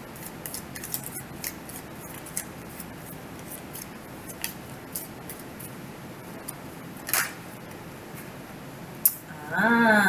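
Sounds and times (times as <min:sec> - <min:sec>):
cards being shuffled: 0:00.2 - 0:05.7.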